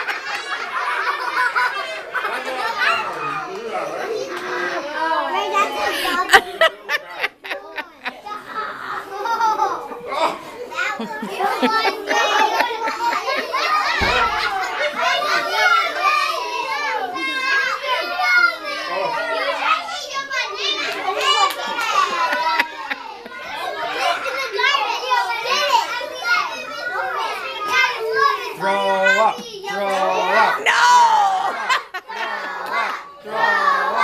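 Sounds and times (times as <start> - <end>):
children chattering and calling out: 0.0 - 34.0.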